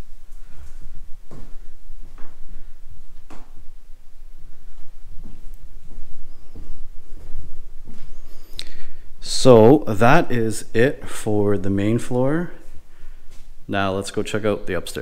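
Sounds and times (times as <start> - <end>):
footsteps on hard floors: 0.3 - 8.5, 12.6 - 13.6.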